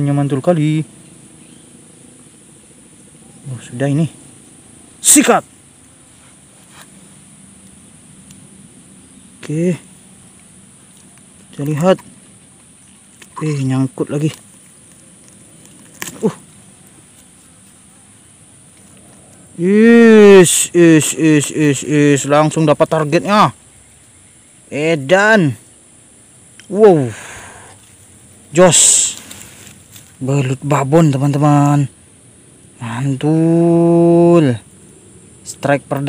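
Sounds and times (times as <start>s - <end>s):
insects chirring: 0.0s - 36.0s.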